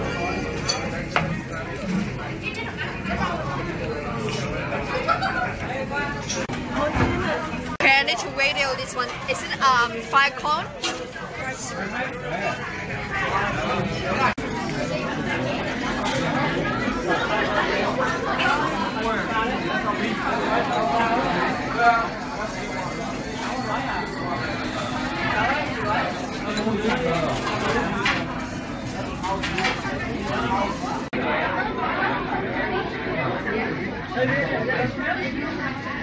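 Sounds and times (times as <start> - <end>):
indistinct chatter of people: 0.0 - 36.0.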